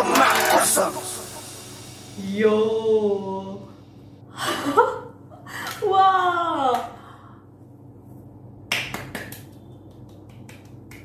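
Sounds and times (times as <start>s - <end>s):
hand claps: 0.0s - 1.1s, 8.7s - 11.0s.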